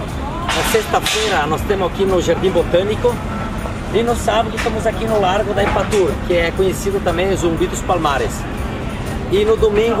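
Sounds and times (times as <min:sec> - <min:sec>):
low background noise: 0:00.0 - 0:10.0
man talking: 0:00.5 - 0:03.2, 0:03.9 - 0:08.5, 0:09.2 - 0:10.0.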